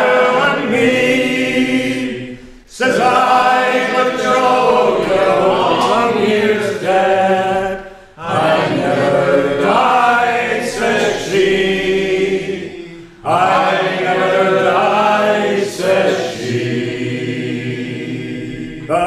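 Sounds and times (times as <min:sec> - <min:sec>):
group singing unaccompanied: 0:00.0 - 0:19.0.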